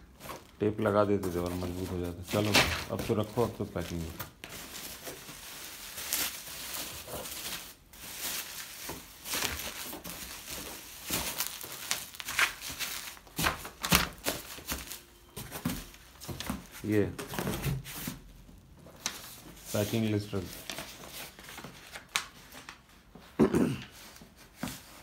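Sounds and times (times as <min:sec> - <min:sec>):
bubble wrap crinkling: 0:00.0 - 0:17.1.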